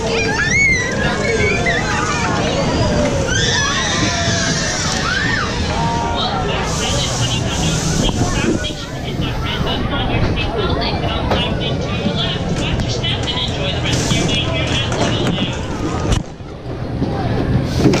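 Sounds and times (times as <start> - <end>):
chatter of voices: 0.0 - 18.0
ride car humming along track: 0.0 - 18.0.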